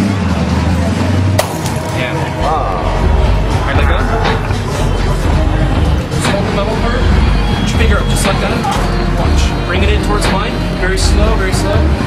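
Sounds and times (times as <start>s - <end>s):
low hum: 0.2s - 12.0s.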